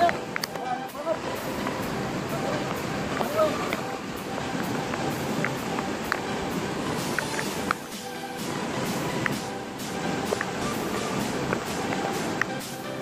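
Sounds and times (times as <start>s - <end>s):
floodwater rushing in river: 0.0s - 13.0s.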